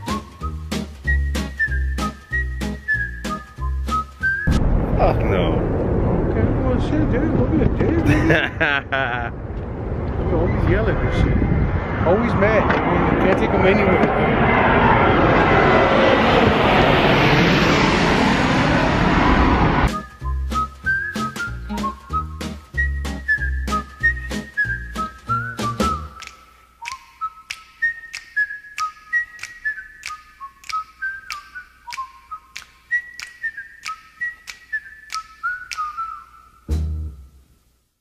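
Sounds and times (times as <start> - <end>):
whistled melody: 0.0 - 4.6, 19.9 - 37.3
jet airliner roar overhead: 9.3 - 20.0
bass beat: 19.9 - 26.2, 36.7 - 37.3
regular clicks: 26.2 - 36.2.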